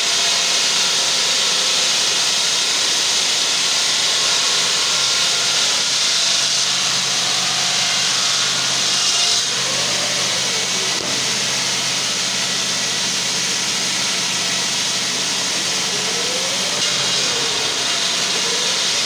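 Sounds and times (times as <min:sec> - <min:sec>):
stone-cutting saw grinding: 0:00.0 - 0:19.0.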